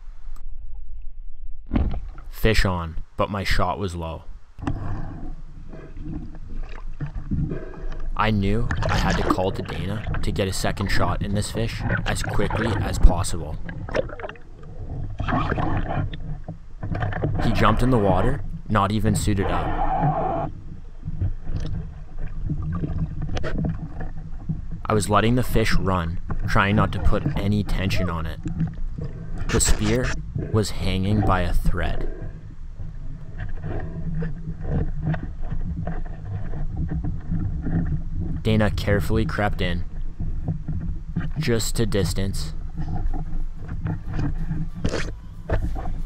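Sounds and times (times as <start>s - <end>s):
low steady hum: 0.0s - 46.0s
underwater rumble: 4.3s - 46.0s
water sloshing: 4.6s - 46.0s.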